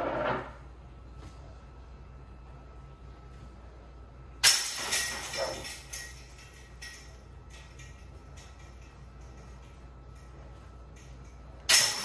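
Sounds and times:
chains jingling and rattling: 4.4s - 12.0s
disc hitting metal chains: 4.4s - 12.0s.

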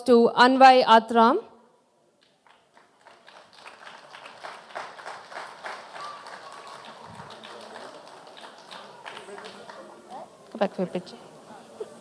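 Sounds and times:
audience applauding: 2.2s - 10.2s.

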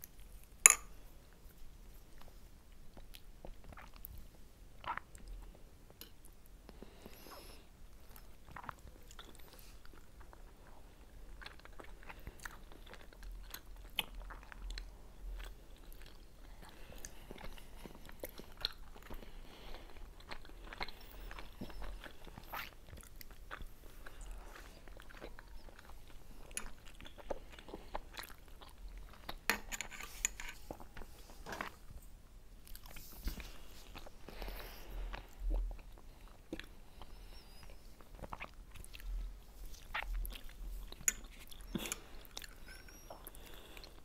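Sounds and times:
chewing and biting food: 8.1s - 29.5s, 32.6s - 44.0s.

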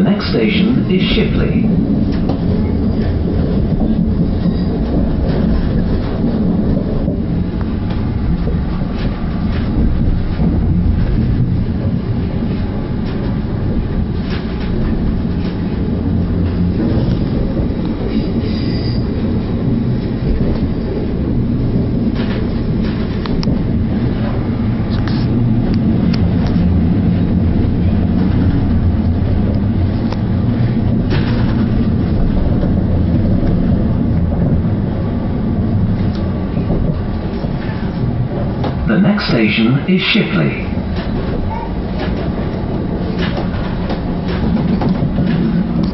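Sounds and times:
train wheels rumbling on rail: 0.0s - 45.9s.

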